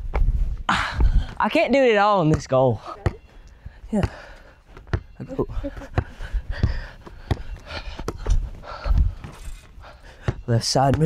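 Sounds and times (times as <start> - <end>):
footsteps on concrete: 0.0 - 1.5, 2.2 - 11.0
close breathing: 0.4 - 1.4, 2.8 - 10.5
basketball bouncing on concrete: 2.2 - 3.3, 4.0 - 5.2, 5.8 - 8.3, 10.2 - 11.0.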